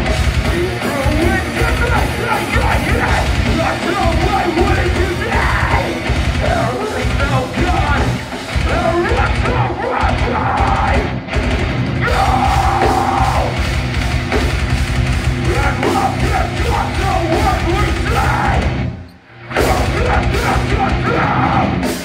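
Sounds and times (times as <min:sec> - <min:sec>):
distorted guitars: 0:00.0 - 0:22.0
drums: 0:00.0 - 0:22.0
yelled and sung vocals: 0:00.0 - 0:22.0.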